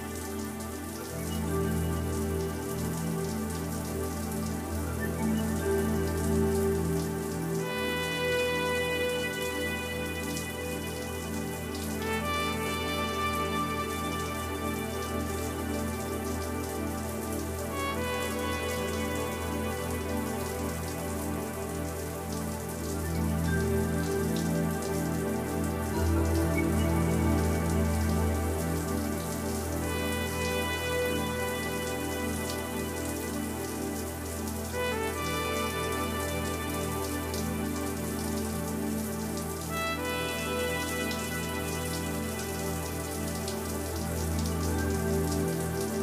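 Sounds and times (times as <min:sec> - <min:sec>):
slow music of held chords: 0:00.0 - 0:46.0.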